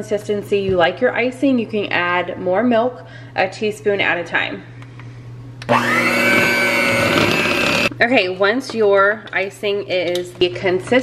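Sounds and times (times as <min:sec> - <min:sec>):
electric hand mixer whine: 0:05.6 - 0:07.9.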